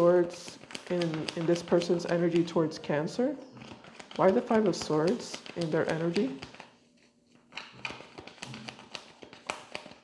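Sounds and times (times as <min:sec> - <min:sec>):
cards being shuffled: 0:00.0 - 0:02.7, 0:03.6 - 0:10.0.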